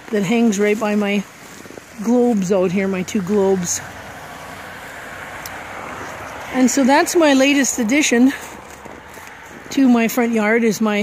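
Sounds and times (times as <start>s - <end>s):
car driving past: 2.9s - 9.8s.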